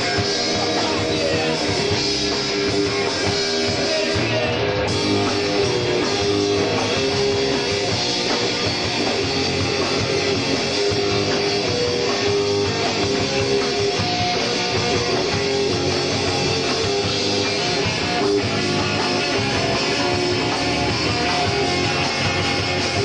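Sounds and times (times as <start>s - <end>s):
drum kit: 0.0s - 23.0s
electric guitars: 0.0s - 23.0s
punk rock band playing: 0.0s - 23.0s.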